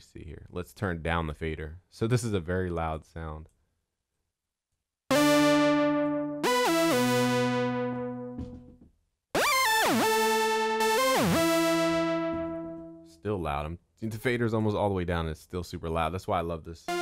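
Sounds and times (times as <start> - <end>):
buzzy synthesizer phrases: 5.1 - 8.4, 9.4 - 13.1.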